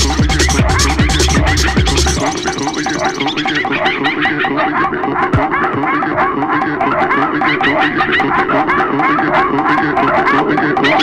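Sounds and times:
pitch-bending techno synth pattern: 0:00.0 - 0:11.0.

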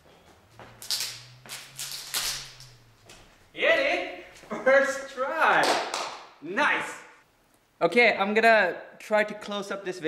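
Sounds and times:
man calling out loudly: 0:03.6 - 0:05.7.

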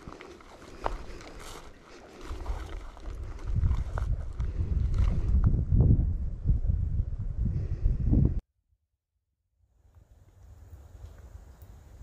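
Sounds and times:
wind buffeting microphone: 0:02.2 - 0:08.4.

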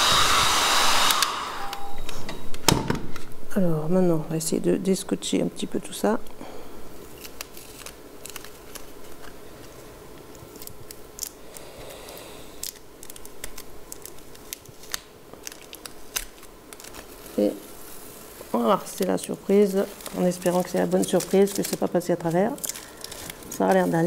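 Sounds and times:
masking tape peeling off paper: 0:07.0 - 0:24.0.

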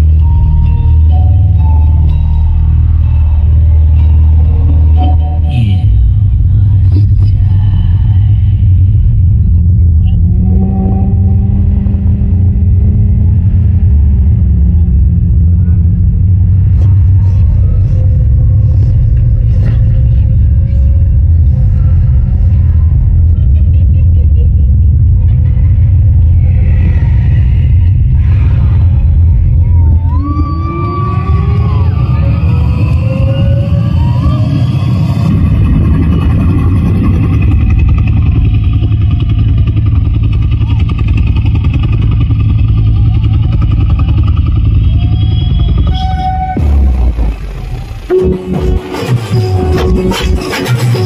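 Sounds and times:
deep bass rumble: 0:00.0 - 0:51.0.

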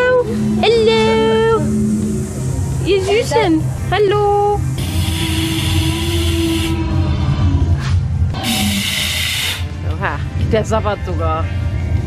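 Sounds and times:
steady low rumble: 0:00.0 - 0:12.0
hissing water sprays: 0:08.4 - 0:09.7.

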